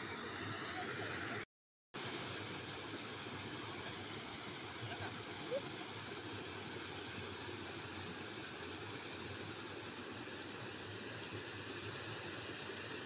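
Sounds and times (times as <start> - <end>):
water rushing over a weir: 0.0 - 1.4, 2.0 - 13.0.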